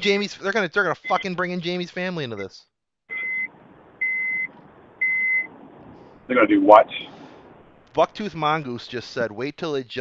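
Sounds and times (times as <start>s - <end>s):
high electronic beep: 1.0s - 1.3s, 3.1s - 5.5s.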